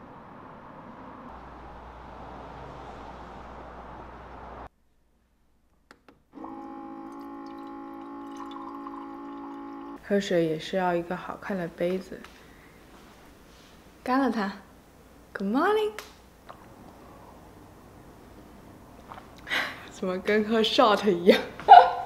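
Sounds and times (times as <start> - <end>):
water running from downspout: 6.4 - 10.0.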